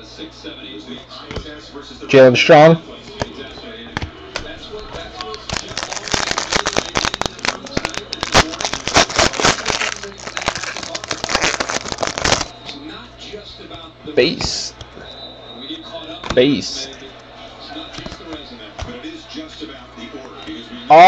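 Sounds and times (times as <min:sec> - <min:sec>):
foil wrapper crinkling: 0:04.4 - 0:12.5.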